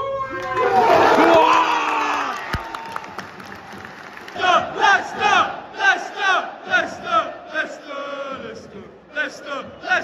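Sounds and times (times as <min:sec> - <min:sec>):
football crowd chanting: 0:04.2 - 0:10.0.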